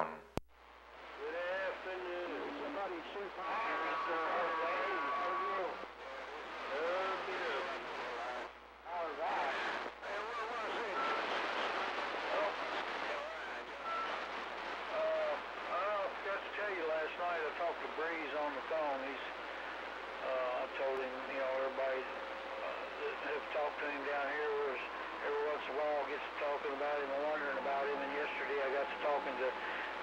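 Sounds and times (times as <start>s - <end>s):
radio static hiss: 0.0s - 30.0s
garbled radio voices: 1.2s - 30.0s.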